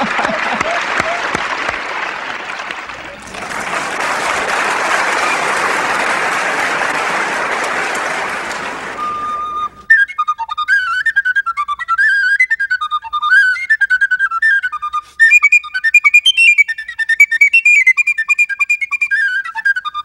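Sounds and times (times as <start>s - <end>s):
audience applauding: 0.0s - 9.9s
held tin whistle note: 8.7s - 20.0s.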